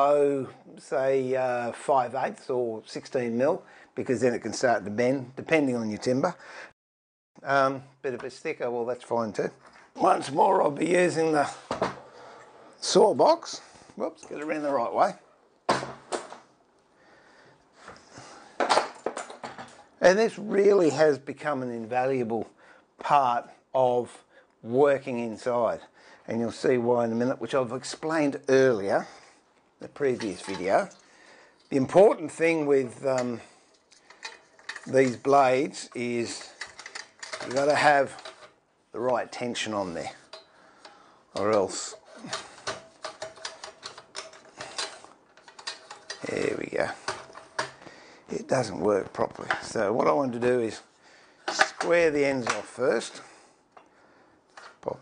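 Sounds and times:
metal saw frame clicking: 34.0s - 38.6s, 40.2s - 47.9s, 51.5s - 52.7s.

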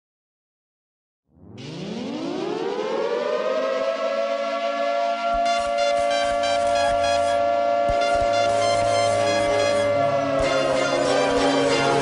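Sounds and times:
rising siren-like tone: 1.3s - 12.0s.

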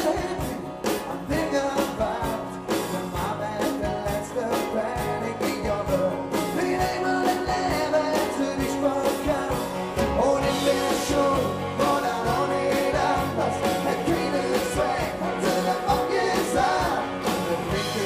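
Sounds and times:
bass guitar: 0.0s - 18.0s
electric guitar: 0.0s - 18.0s
man singing lead vocal: 0.0s - 18.0s.

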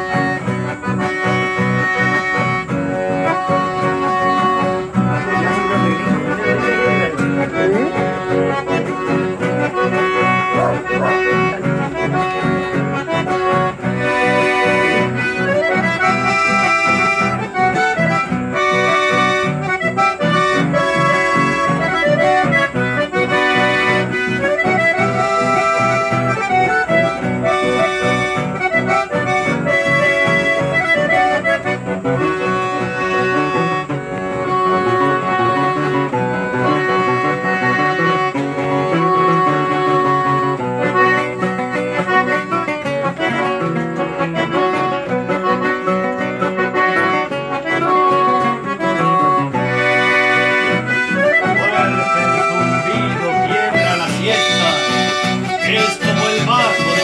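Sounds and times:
accordion: 0.0s - 57.0s
rhythmic guitar accompaniment: 0.0s - 57.0s.

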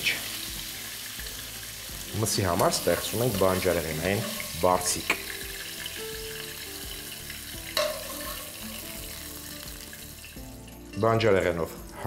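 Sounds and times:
food sizzling in a frying pan: 0.0s - 12.0s
metal spoon clinking on pan: 4.2s - 4.6s, 7.8s - 8.6s.

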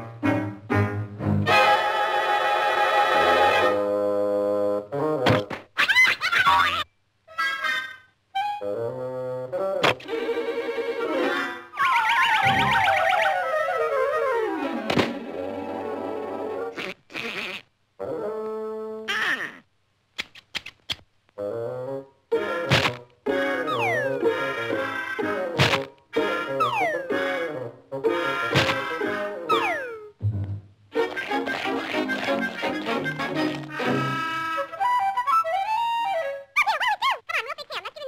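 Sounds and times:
cartoon orchestral music: 0.0s - 4.0s, 9.5s - 16.8s, 22.3s - 22.7s, 23.3s - 36.6s.

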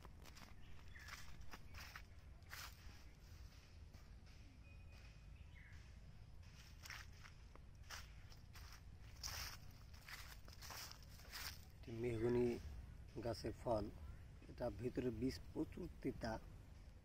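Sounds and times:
footsteps on dry leaves: 0.0s - 4.4s, 6.4s - 12.6s.

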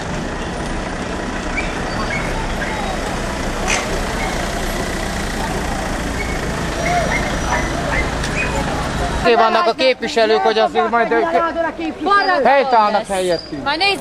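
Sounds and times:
low rumble of street noise: 0.0s - 14.0s
faint voices: 1.6s - 14.0s.

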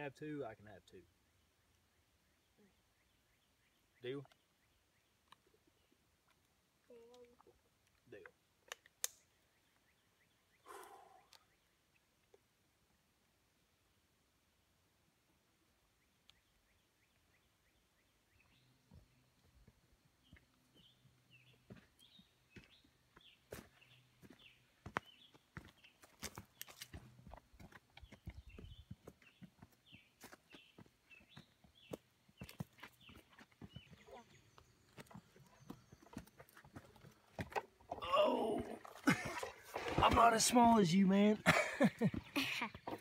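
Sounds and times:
child's voice: 6.9s - 7.4s.

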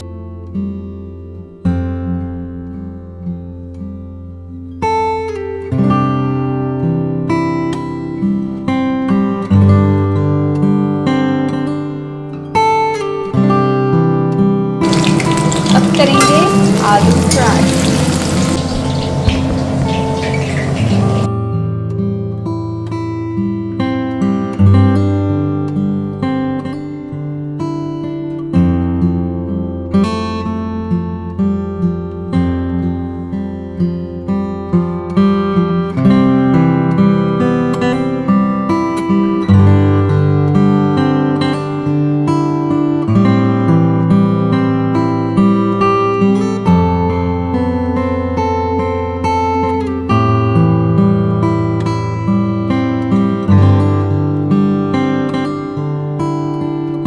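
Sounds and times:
acoustic guitar strumming chords: 14.2s - 27.8s.

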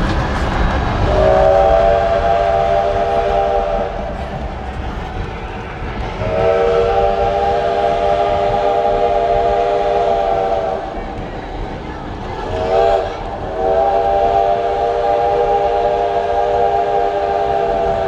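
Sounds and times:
train rumbling: 0.0s - 18.0s
steam locomotive whistle: 1.0s - 4.2s, 6.2s - 11.0s, 12.4s - 18.0s.

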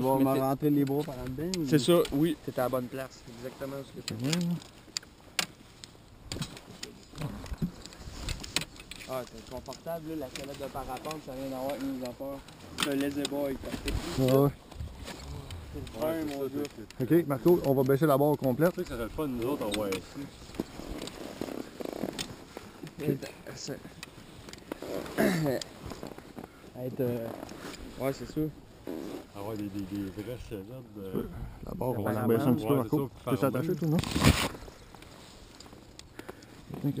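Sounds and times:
harness hardware clicking and rattling: 0.3s - 2.8s, 3.7s - 27.8s, 29.3s - 30.3s.

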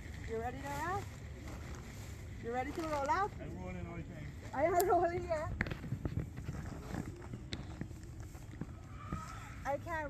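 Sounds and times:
tarp rustling: 0.0s - 5.5s.

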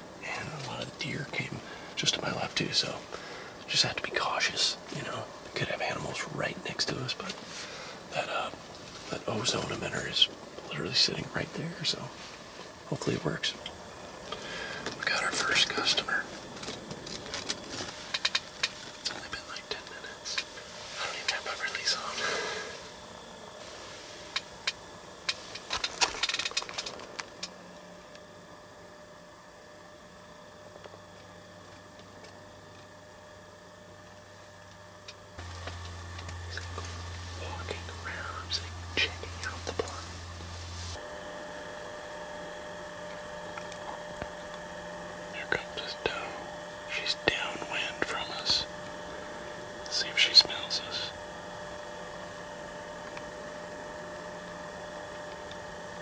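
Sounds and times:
faint steady hum: 0.0s - 56.0s
hushed whispering: 0.2s - 12.3s, 14.4s - 16.4s, 19.0s - 22.9s, 36.5s - 40.3s, 45.3s - 51.2s.

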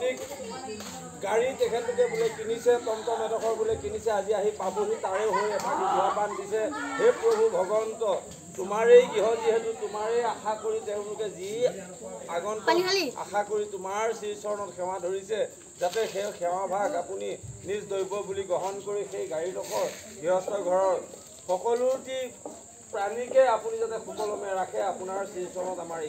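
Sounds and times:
crickets trilling: 0.0s - 26.0s.

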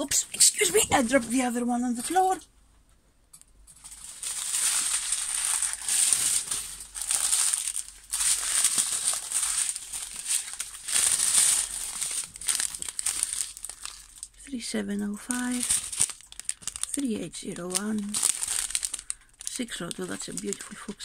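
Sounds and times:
plastic packaging crinkling: 3.7s - 21.0s.

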